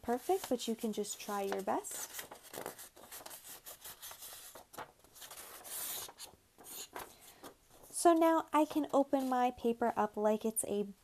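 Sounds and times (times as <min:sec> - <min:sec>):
paper rustling and crackling: 0:00.0 - 0:08.2.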